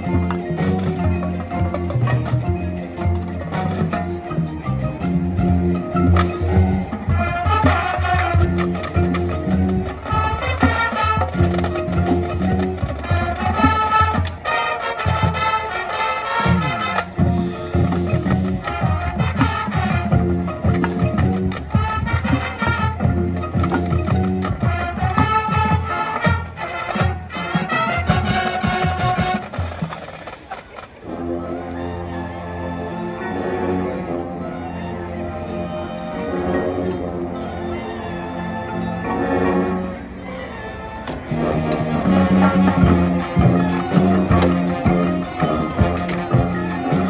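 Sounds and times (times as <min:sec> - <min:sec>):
drum and mallet percussion pulse: 0:00.0 - 0:15.7, 0:16.4 - 0:31.1, 0:32.8 - 0:47.0
marching band playing: 0:00.0 - 0:47.0.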